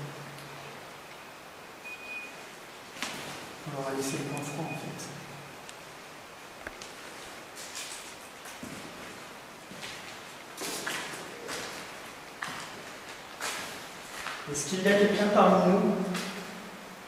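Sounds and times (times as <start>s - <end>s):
soft hissy sounds: 0.0s - 17.0s
person speaking: 3.6s - 5.3s, 14.4s - 16.6s.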